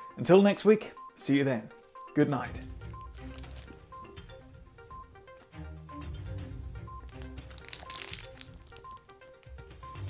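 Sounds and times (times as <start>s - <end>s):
background music: 0.0s - 10.0s
foil wrapper crinkling: 2.6s - 3.8s, 7.0s - 9.5s.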